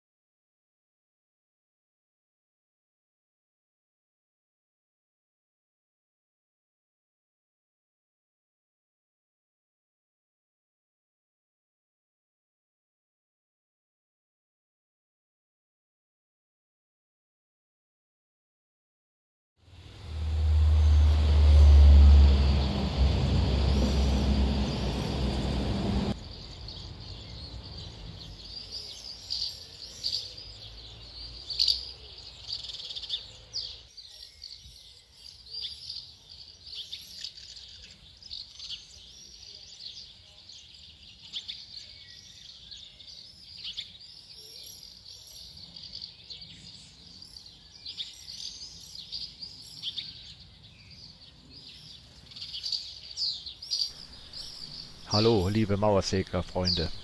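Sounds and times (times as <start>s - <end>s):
loud low rumble: 19.7s - 26.2s
swifts chirping and screaming: 19.8s - 57.0s.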